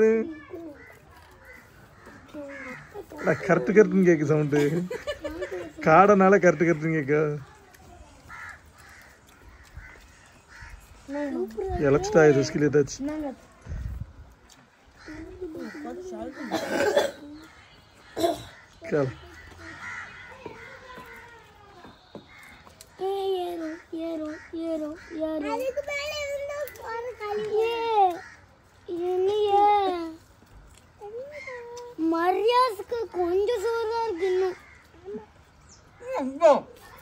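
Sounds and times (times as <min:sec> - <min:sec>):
crow cawing: 0:00.2 - 0:04.3, 0:08.2 - 0:11.6, 0:14.9 - 0:29.0, 0:33.4 - 0:35.3.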